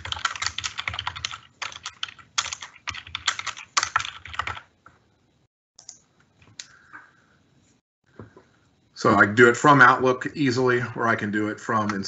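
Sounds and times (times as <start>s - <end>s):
keyboard typing clicks: 5.8s - 6.8s.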